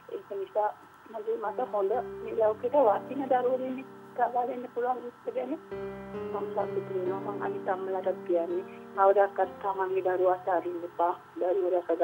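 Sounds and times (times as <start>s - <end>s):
person talking: 0.0s - 5.7s, 6.3s - 12.0s.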